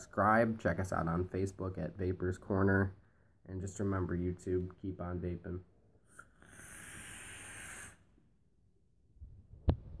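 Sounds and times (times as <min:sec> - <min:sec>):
airy hiss of vape draw: 0:06.2 - 0:08.1.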